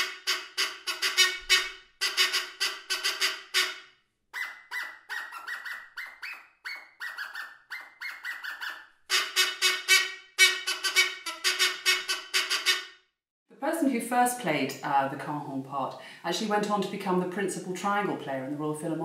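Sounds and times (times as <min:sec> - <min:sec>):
squeeze-bulb horn honks: 0:00.0 - 0:03.8, 0:09.1 - 0:12.9.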